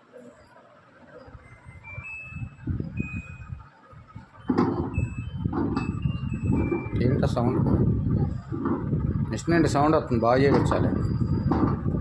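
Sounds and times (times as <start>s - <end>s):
low irregular rumble: 1.2s - 12.0s.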